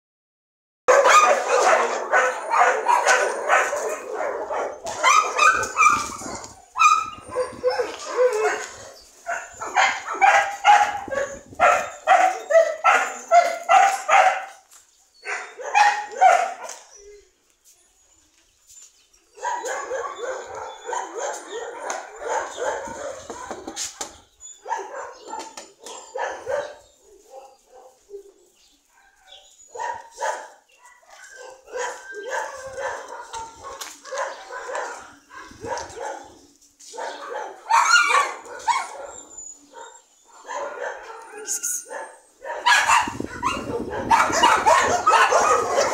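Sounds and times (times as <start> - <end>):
dogs barking: 0.9 - 14.6, 15.2 - 17.0, 19.3 - 45.9.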